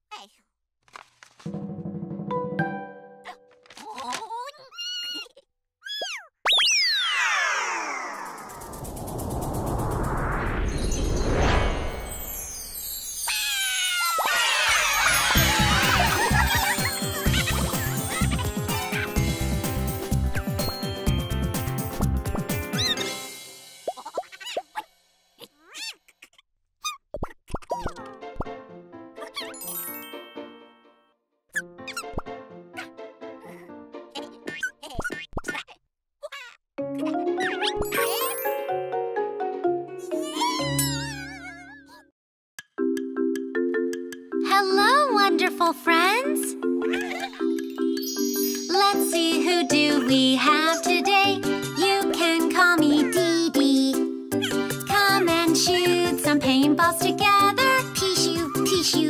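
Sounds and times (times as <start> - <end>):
bouncy children's music: 1.5 - 3.6, 12.5 - 24.8, 27.8 - 31.0, 36.8 - 42.0, 42.6 - 59.0
squeaky cartoon voice: 3.2 - 7.3, 13.2 - 15.2, 22.7 - 23.0, 23.9 - 28.1, 29.2 - 29.8, 31.5 - 32.2, 34.2 - 38.4, 40.1 - 42.1, 46.1 - 47.6, 52.8 - 53.4
rising and falling blip: 6.4 - 12.7
rushing noise: 8.1 - 12.6.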